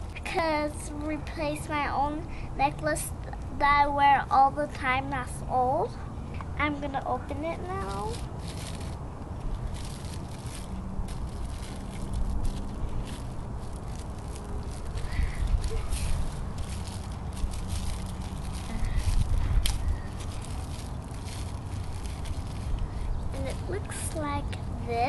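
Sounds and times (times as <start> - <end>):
wind rumble on microphone: 7.4 - 25.0
plastic bag crinkling: 7.7 - 24.3.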